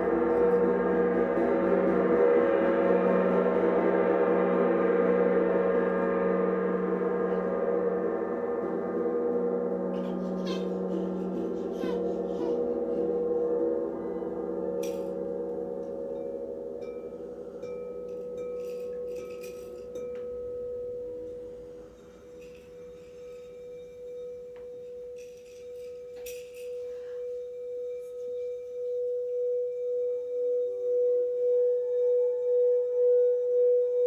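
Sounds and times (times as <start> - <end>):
crystal singing bowl tone: 0.0 - 34.0
low many-toned ring: 0.0 - 34.0.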